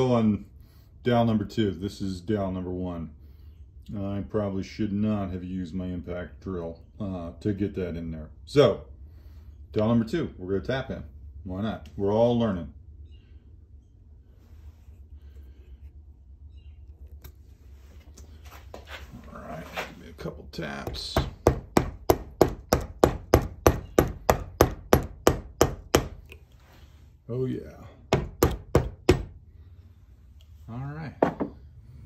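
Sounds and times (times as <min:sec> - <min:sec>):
low steady hum: 0:00.0 - 0:32.0
wooden dowel scraping: 0:16.8 - 0:21.3
sharp taps on wooden dowel: 0:20.8 - 0:26.4.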